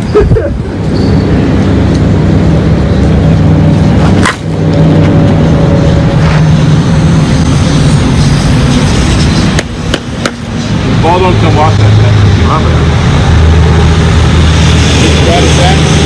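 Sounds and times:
low engine hum: 0.0 - 16.0
bat striking ball: 4.2 - 4.5, 9.6 - 10.5.

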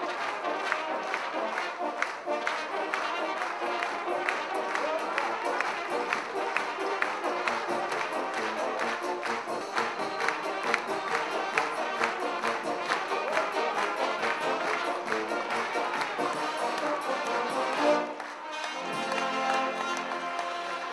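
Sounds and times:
brass band playing: 0.0 - 20.9.

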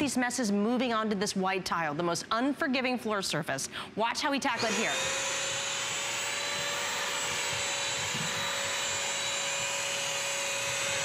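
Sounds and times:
wet vacuum running: 4.6 - 11.0.

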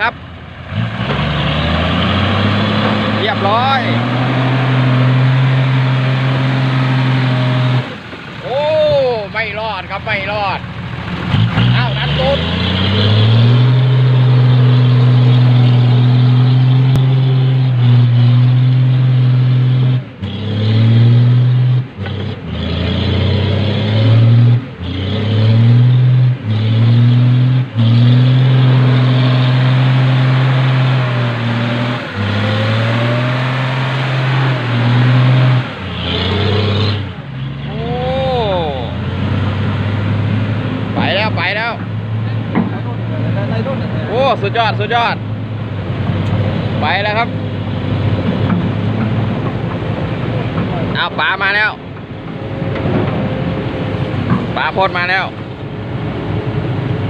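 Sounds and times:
diesel truck engine revving: 0.0 - 57.0.

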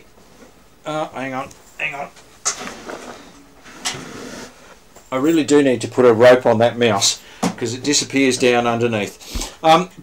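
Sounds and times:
sharp scrape: 2.6 - 4.7.

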